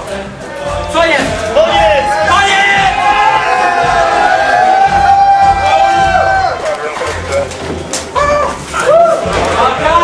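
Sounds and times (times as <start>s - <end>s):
song accompaniment: 0.0s - 10.0s.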